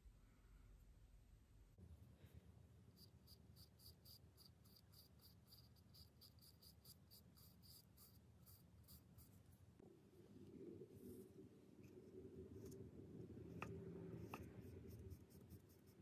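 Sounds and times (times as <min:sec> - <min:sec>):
paintbrush dabbing on wood: 0:13.5 - 0:16.0.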